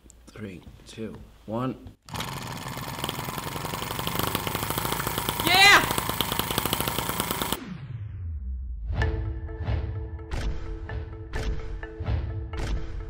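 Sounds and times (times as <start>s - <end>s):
model engine running fast popping: 2.1s - 7.6s
man exclaiming: 5.4s - 6.0s.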